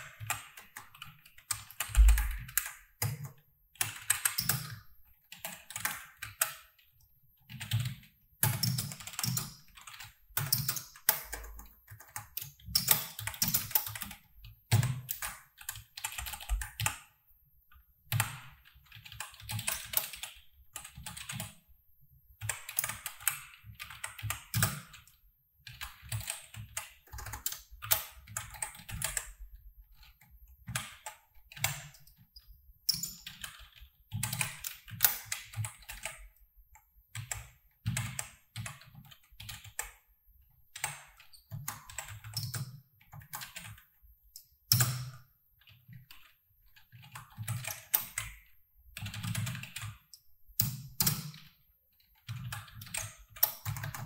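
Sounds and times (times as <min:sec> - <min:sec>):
typing on computer keyboard: 0:00.0 - 0:21.6, 0:22.4 - 0:40.1, 0:40.7 - 0:54.0.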